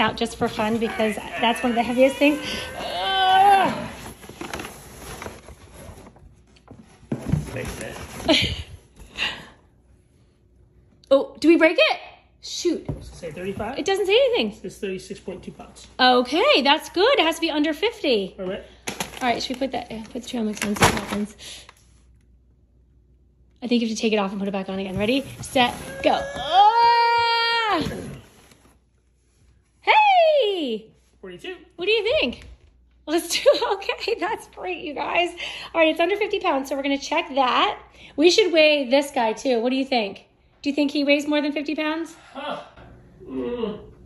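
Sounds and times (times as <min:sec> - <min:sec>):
people making effort sounds: 0:00.4 - 0:04.4.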